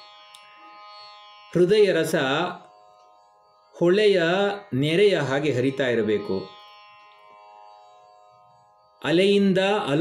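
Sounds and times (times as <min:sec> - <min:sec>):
faint musical drone: 0:00.0 - 0:10.0.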